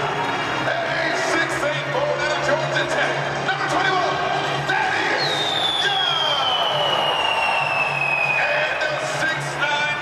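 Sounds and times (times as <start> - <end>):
crowd noise: 0.0 - 10.0
falling whistle-like tone: 5.2 - 8.5.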